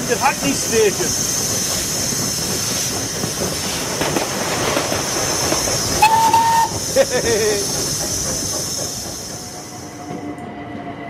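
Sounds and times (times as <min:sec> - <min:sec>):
steam locomotive hissing: 0:00.0 - 0:10.2
steam whistle blast: 0:06.0 - 0:06.8.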